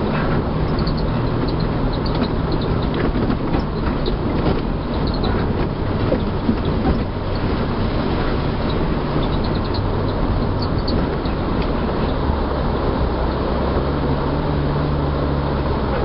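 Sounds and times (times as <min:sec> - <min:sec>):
vehicle engine low rumble: 0:00.0 - 0:16.0
vehicle rattles and clicks: 0:00.0 - 0:16.0.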